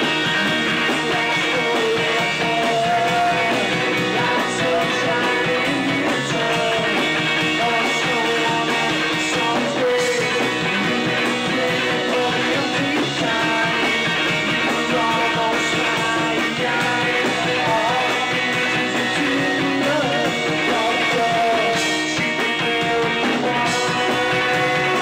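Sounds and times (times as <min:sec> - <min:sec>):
bass guitar: 0:00.0 - 0:25.0
drum kit: 0:00.0 - 0:25.0
electric guitar: 0:00.0 - 0:25.0
person singing: 0:00.0 - 0:25.0.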